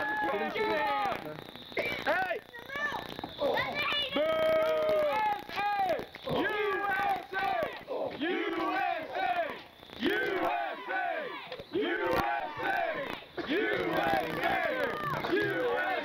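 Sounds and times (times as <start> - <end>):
children shouting and cheering: 0.0 - 1.0, 2.6 - 16.0.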